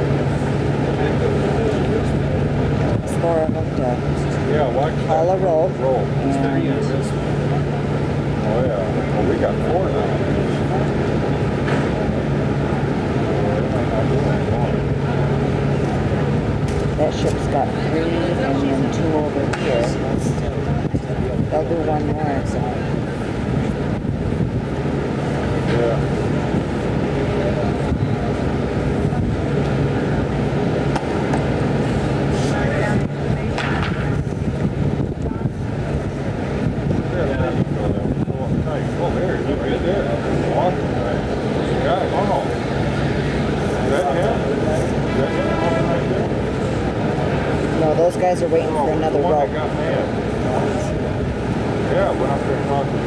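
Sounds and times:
constant low hum: 0.0 - 53.0
indistinct voices: 0.0 - 53.0.

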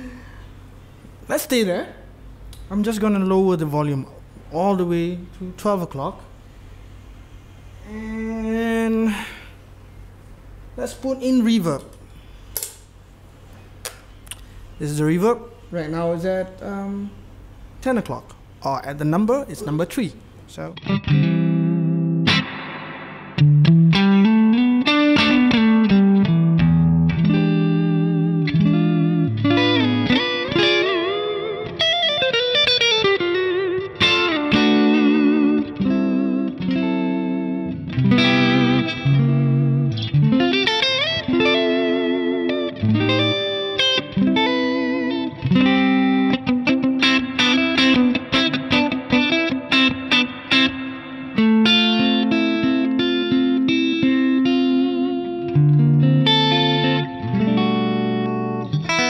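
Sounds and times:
electric guitar with reverb: 20.7 - 59.0.

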